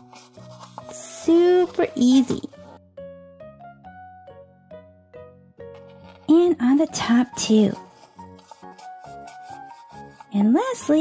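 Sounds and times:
soft background music: 0.0s - 11.0s
toothbrush scrubbing plastic teeth: 7.4s - 11.0s.

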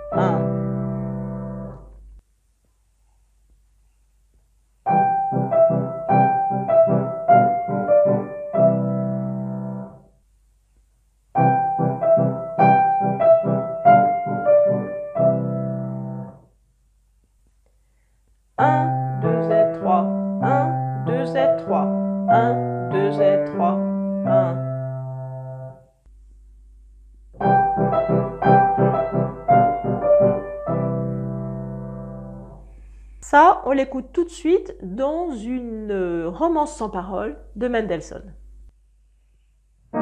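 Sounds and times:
slow piano playing: 0.0s - 2.0s, 4.9s - 10.1s, 11.4s - 16.4s, 18.6s - 25.9s, 27.4s - 32.7s.

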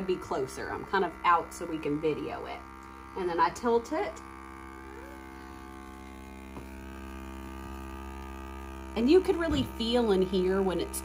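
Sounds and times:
small vacuum pump humming: 0.0s - 11.0s.

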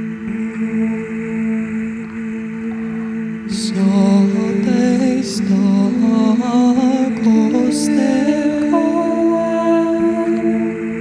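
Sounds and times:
low drone: 0.0s - 11.0s
wordless humming voice: 0.0s - 11.0s.

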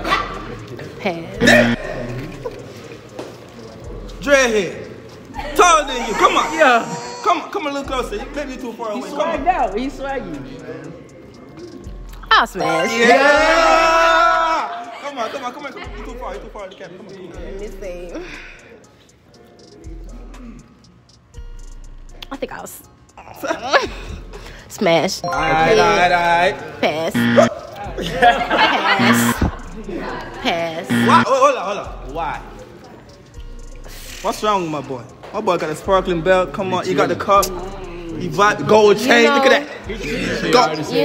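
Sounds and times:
background music with deep bass: 0.0s - 15.0s, 15.6s - 41.0s.

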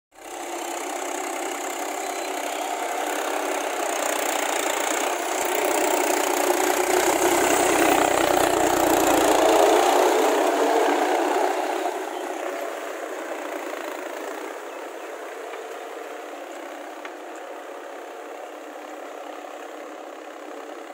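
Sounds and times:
tractor diesel engine running: 0.2s - 20.9s.

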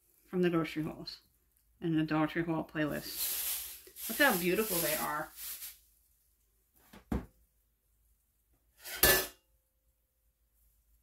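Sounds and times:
kitchen utensils clinking: 8.8s - 9.4s.

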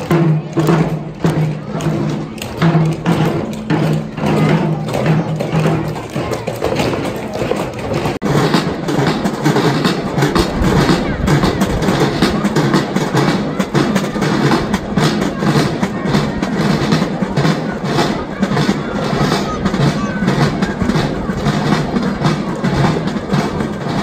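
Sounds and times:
children's voices: 0.0s - 24.0s
hand drums beaten by crowd: 0.0s - 24.0s.

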